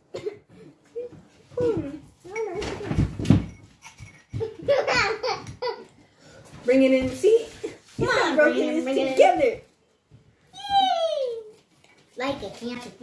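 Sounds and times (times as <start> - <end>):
children laughing: 3.8 - 6.0.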